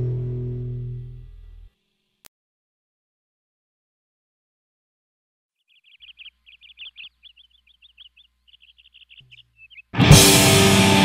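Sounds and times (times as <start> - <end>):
faint low hum: 0.0 - 2.3
songbird chirping: 5.6 - 10.0
heavy metal band playing: 10.0 - 11.0.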